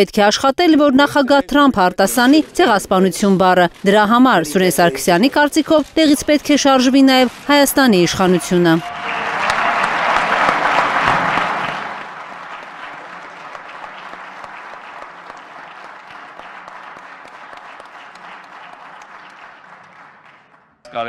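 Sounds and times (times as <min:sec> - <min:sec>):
crowd applauding: 0:01.1 - 0:21.0.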